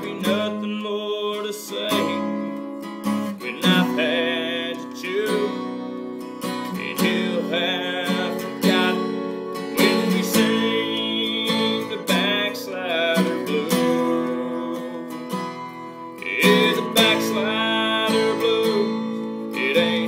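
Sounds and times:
acoustic guitar strumming: 0.0 - 20.0
man singing: 0.0 - 20.0.

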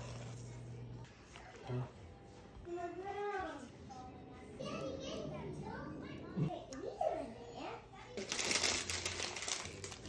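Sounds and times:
crackling rustling noise: 8.2 - 10.0.

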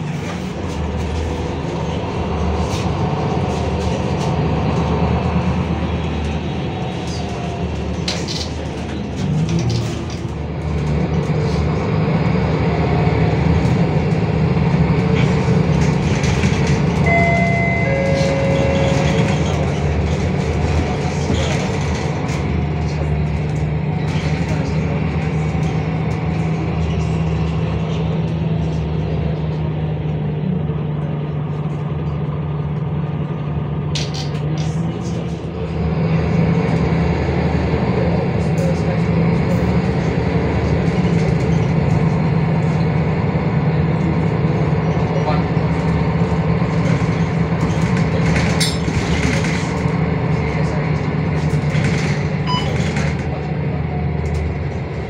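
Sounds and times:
bus diesel engine running: 0.0 - 55.0
low hum: 16.1 - 20.6
short high tones: 17.1 - 19.4.

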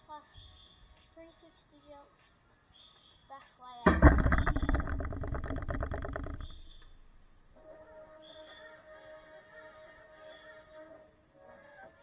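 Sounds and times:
rustling and scraping on microphone: 3.9 - 7.2.

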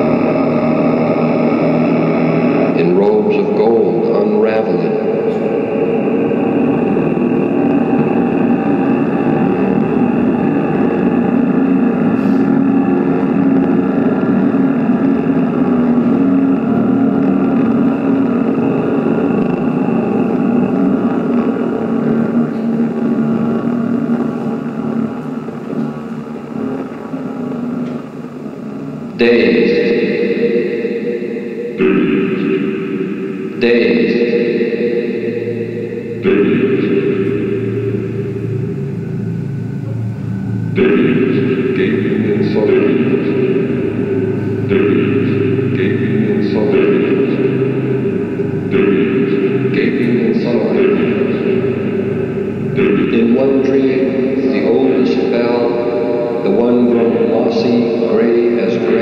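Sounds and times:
electronic music over loudspeakers: 0.0 - 59.0
loud chord-like attacks: 0.0 - 59.0.

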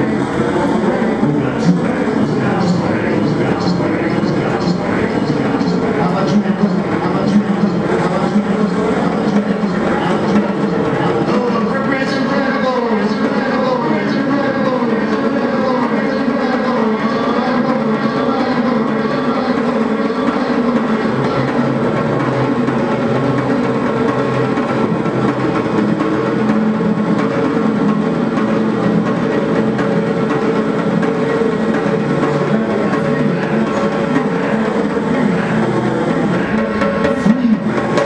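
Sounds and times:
experimental electronic music: 0.0 - 38.0.

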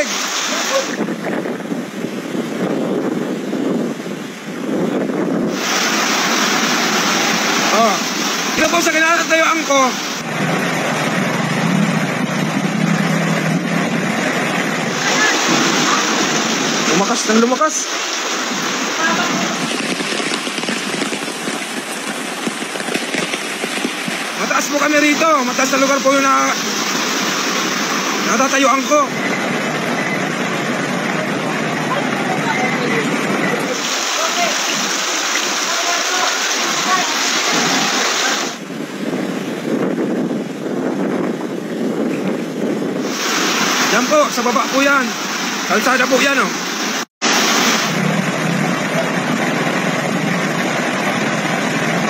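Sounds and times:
storm waves surging over seawall: 0.0 - 52.0
water rushing across floor: 0.0 - 52.0.

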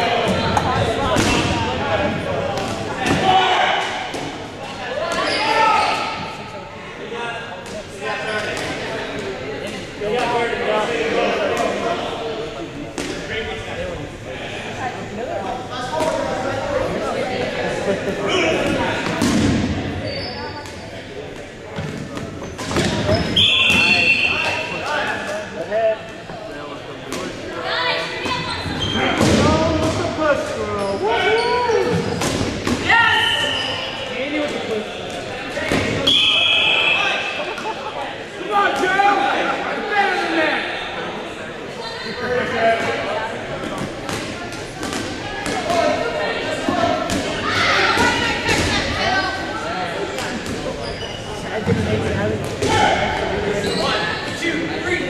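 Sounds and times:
players shouting and chatting: 0.0 - 55.0
balls smacking and bouncing: 43.6 - 45.9.

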